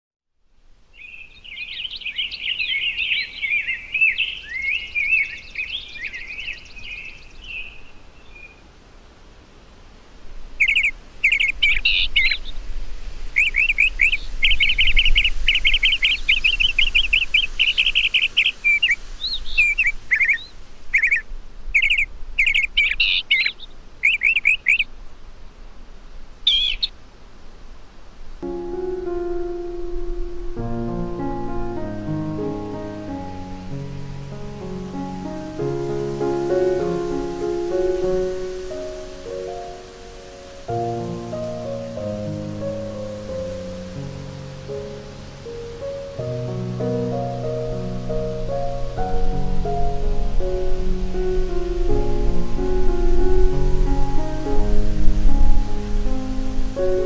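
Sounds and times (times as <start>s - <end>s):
songbird singing: 0.8s - 8.8s, 10.5s - 27.1s, 28.4s - 57.0s.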